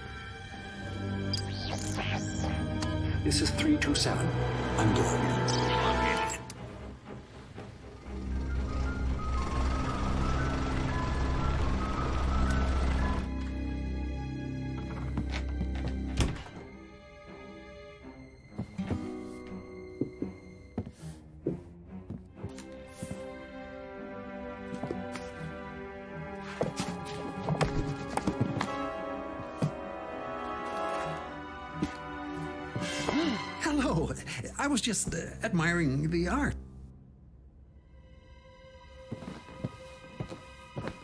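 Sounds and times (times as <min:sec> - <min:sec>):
film score with held notes: 0:00.0 - 0:41.0.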